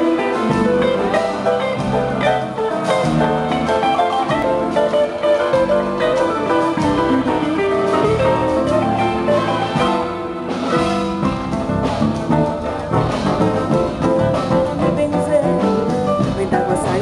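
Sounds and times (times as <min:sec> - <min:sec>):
guitar: 0:00.0 - 0:17.0
orchestra and band playing: 0:00.0 - 0:17.0.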